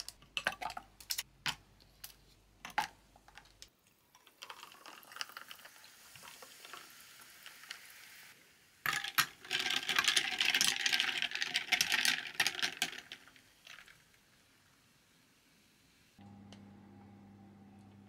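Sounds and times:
carbonated drink fizzing: 4.2 - 8.1.

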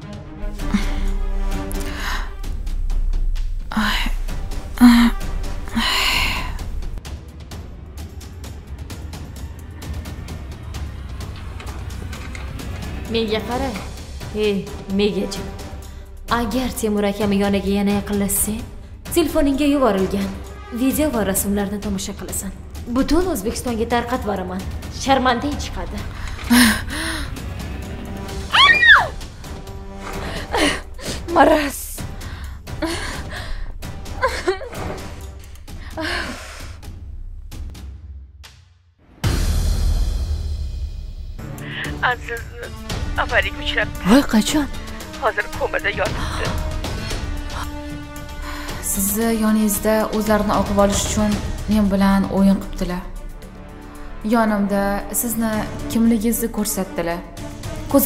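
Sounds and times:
soundtrack music: 6.6 - 36.0, 39.0 - 58.0
woman breathing hard: 26.2 - 27.8, 32.2 - 33.9, 35.7 - 36.9
woman short voiced sounds: 28.6 - 29.1.

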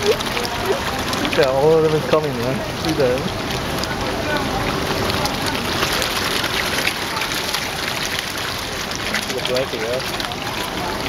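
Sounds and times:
fish splashing at pond surface: 0.0 - 11.0.

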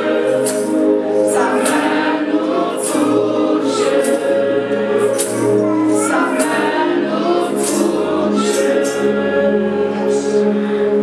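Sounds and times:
electronic keyboard: 0.0 - 11.0
group singing a gospel song: 0.0 - 11.0.

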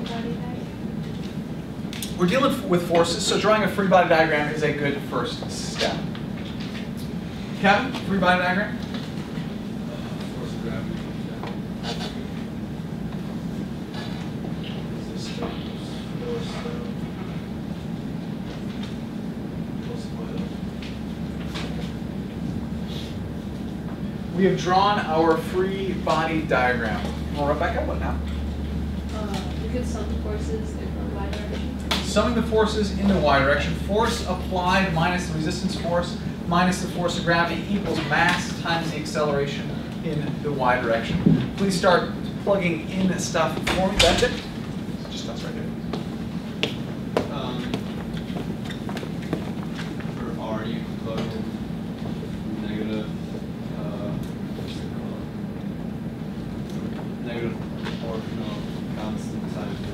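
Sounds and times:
low room hum: 0.0 - 59.9.

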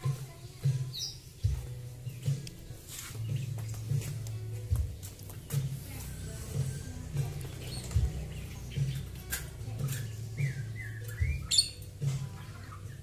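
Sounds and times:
small bird chirping: 0.8 - 2.5, 7.3 - 13.0.

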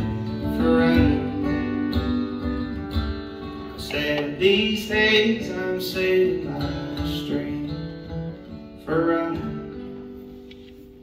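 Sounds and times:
acoustic guitar chord ringing: 0.0 - 10.5.

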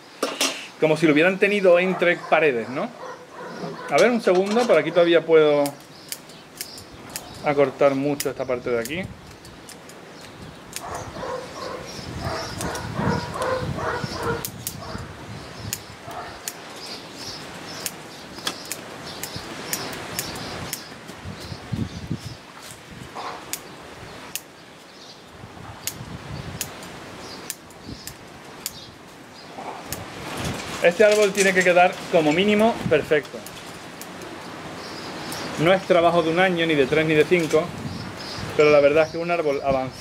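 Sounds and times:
scissors snipping: 8.1 - 15.0.

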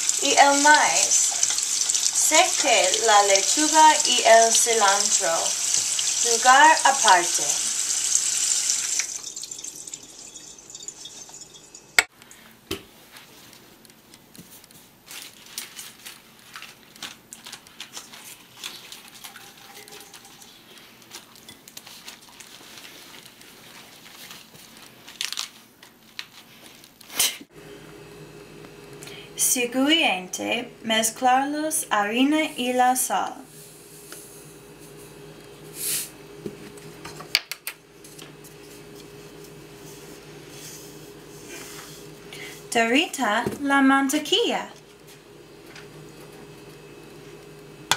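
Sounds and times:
low electrical hum: 0.0 - 47.9
lettuce leaves rustling: 15.0 - 26.8.

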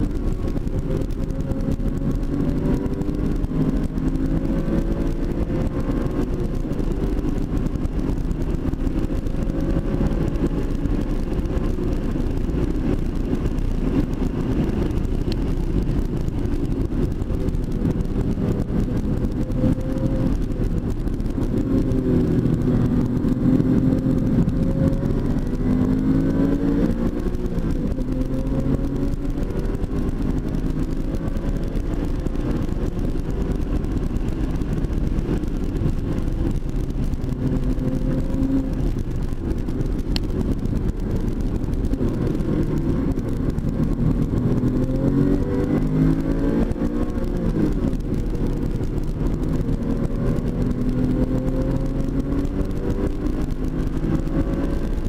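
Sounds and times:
car engine revving at speed: 0.0 - 55.0.

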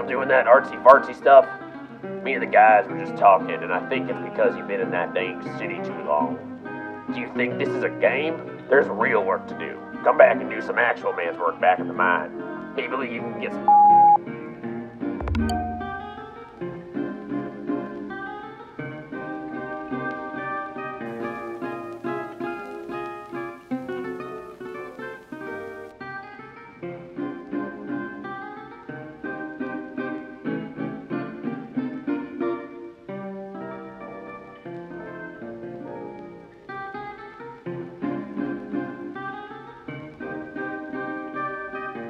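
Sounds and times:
low thump: 15.2 - 16.2
plucked acoustic guitar: 15.2 - 16.8.

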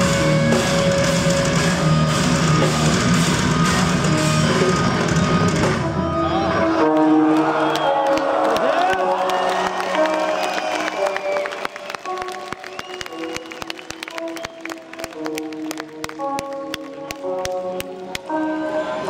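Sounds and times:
audience cheering: 6.3 - 15.9
scattered claps: 9.7 - 18.4.

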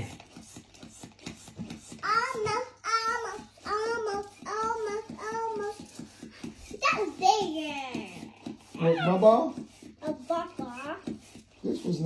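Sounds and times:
child sing-song chanting: 2.0 - 6.2.

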